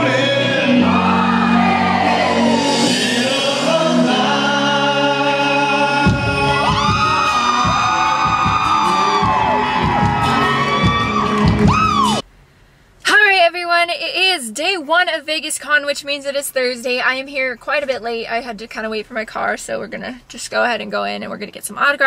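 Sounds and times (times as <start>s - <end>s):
man singing gliding notes: 0.0s - 7.6s
amplified music: 0.0s - 12.2s.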